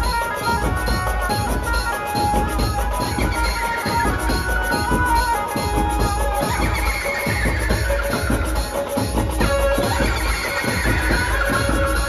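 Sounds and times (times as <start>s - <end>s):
electronic keyboard melody: 0.0s - 12.0s
heavy drum beat: 0.0s - 12.0s.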